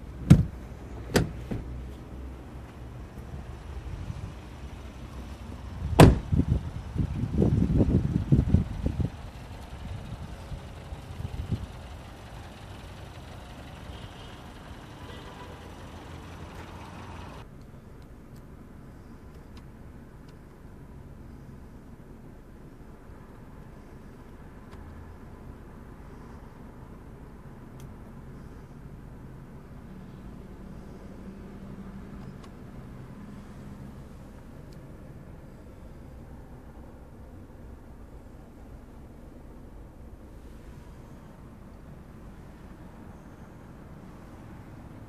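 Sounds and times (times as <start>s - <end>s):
bumps and knocks: 0.2s - 1.7s
car door slamming: 0.2s - 1.7s, 5.9s - 6.4s.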